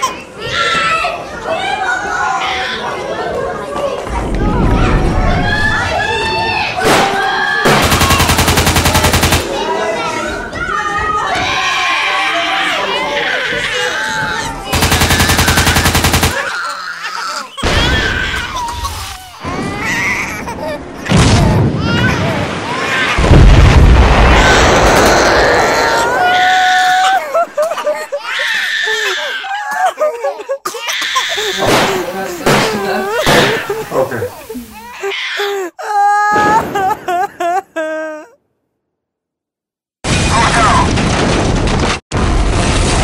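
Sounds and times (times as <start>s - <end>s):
people wailing and crying: 4.5s - 23.3s, 24.1s - 38.4s
people shouting: 5.3s - 13.2s, 14.0s - 18.6s
loud crack: 6.8s - 9.6s, 14.7s - 16.7s, 22.4s - 26.2s, 31.6s - 34.0s
automatic gunfire: 6.9s - 9.6s, 14.7s - 16.6s
loud explosion rumbling: 17.6s - 18.5s, 21.0s - 22.6s, 23.2s - 26.1s, 40.1s - 43.0s.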